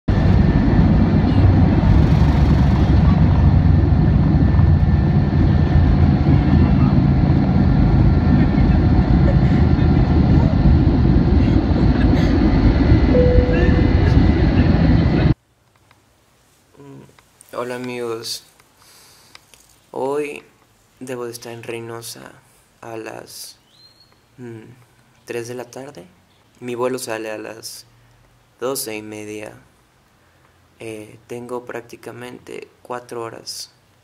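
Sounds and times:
airliner engines rumbling: 0.1 - 15.4.

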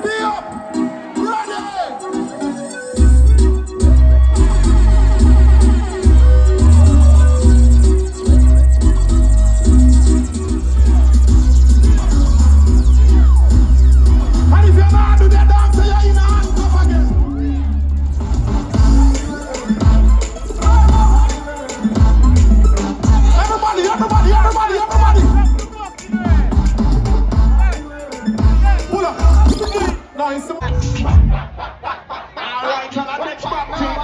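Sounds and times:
loud live music: 0.0 - 34.0
heavy pulsing bass line: 3.0 - 30.0.

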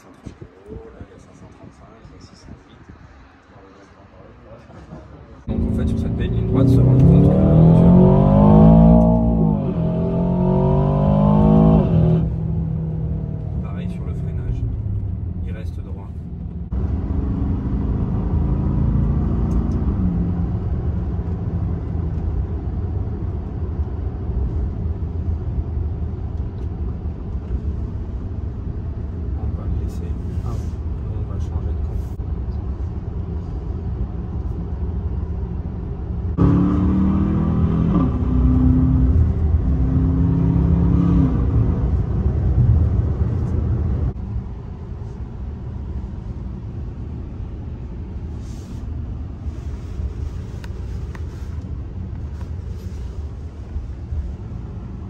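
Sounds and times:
car cabin engine and road rumble: 0.0 - 55.0.

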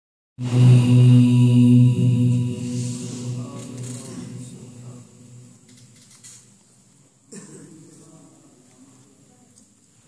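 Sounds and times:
man chanting melodically: 0.4 - 5.7.

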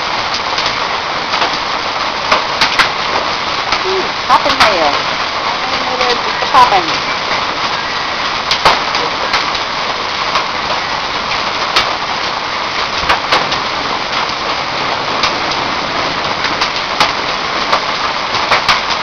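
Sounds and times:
hailstones popping on hard surfaces: 0.0 - 19.0
heavy rain downpour: 0.0 - 19.0.

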